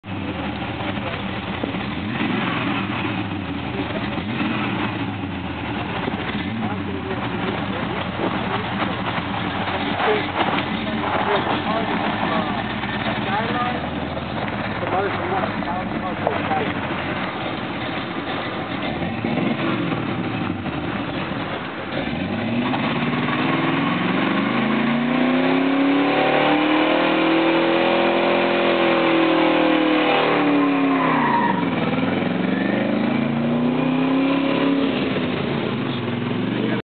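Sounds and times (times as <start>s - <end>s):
car engine revving hard: 0.1s - 36.8s
tyres spinning: 0.2s - 25.9s.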